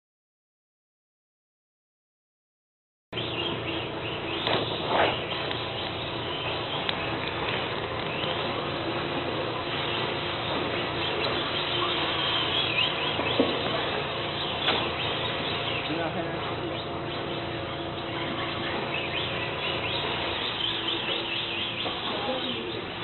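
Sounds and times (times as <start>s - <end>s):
steady hum: 3.2s - 23.0s.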